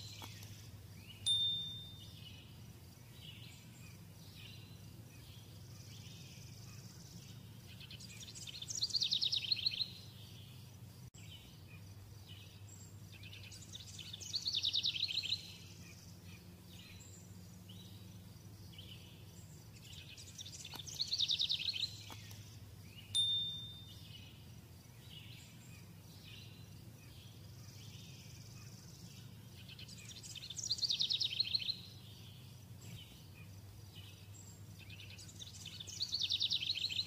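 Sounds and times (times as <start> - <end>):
bird singing falling trill: 0.0 - 10.6, 11.2 - 37.0.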